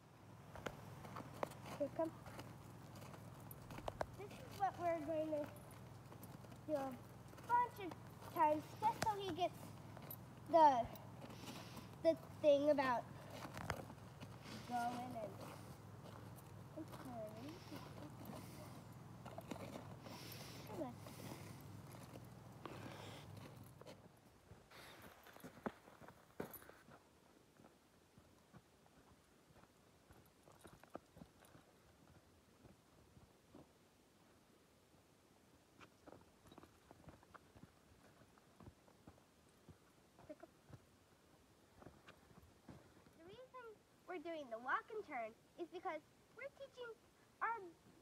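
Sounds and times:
footsteps crunching on snow and ice: 0.5s - 24.0s.

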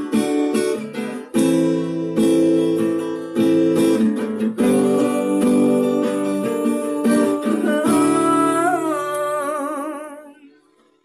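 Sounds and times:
acoustic guitar strummed: 0.0s - 11.0s
man singing with vibrato: 4.5s - 10.5s.

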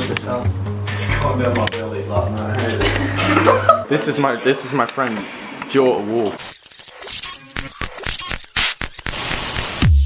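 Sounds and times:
glitchy electronic music: 6.4s - 10.0s.

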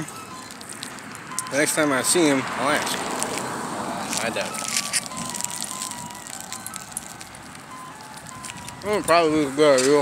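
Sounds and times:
ice cream truck jingle: 0.0s - 10.0s.

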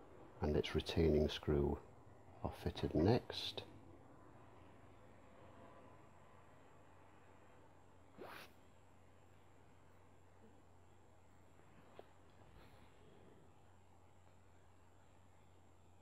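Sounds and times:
low room hum: 0.0s - 16.0s
faint swish: 8.1s - 8.6s.

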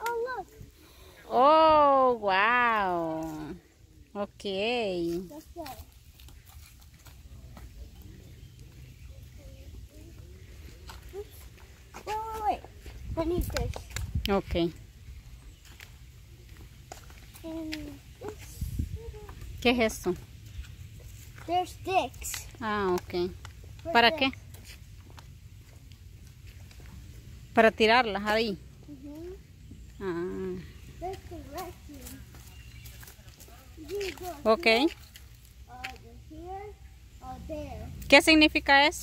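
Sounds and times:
footsteps on sandy path: 5.0s - 14.2s, 15.2s - 27.2s, 28.2s - 36.1s.

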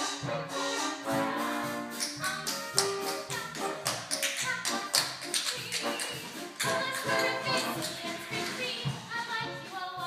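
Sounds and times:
live band music: 0.0s - 10.0s
tap shoes striking stage floor: 1.4s - 10.0s.

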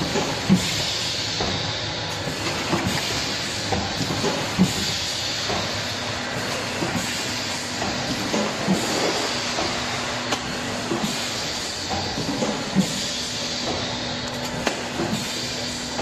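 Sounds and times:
packaging machine running: 0.0s - 16.0s.

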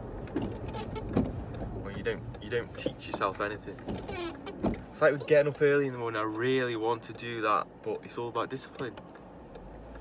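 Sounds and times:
car cabin road rumble: 0.0s - 10.0s.

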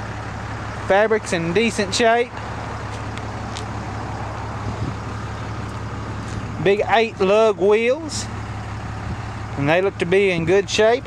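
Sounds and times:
faint outdoor background noise: 0.0s - 11.0s
low mechanical hum: 0.0s - 11.0s.

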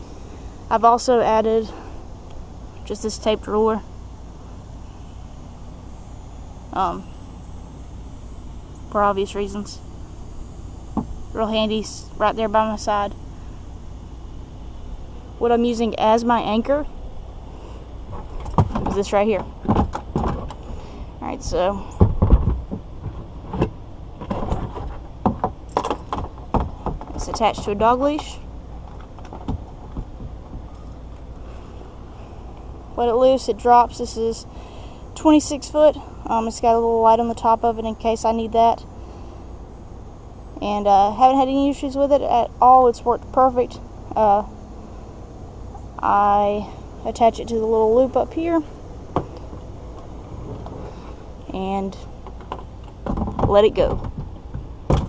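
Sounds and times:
low background rumble: 0.0s - 55.0s.

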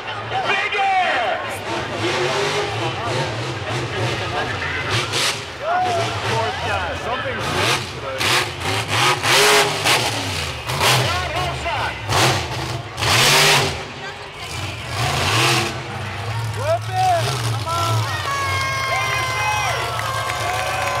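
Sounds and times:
truck engine revving: 1.5s - 21.0s
crowd shouting: 13.2s - 21.0s.

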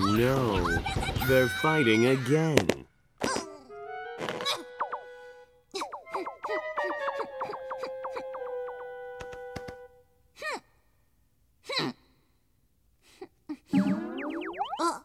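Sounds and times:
bouncy springy cartoon notes: 5.8s - 8.9s, 13.7s - 15.0s
rising sliding tone sweep: 13.7s - 15.0s.

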